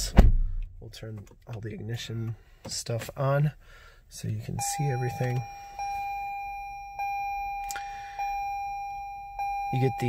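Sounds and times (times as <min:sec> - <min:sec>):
dashboard warning chime: 0:04.3 - 0:10.0.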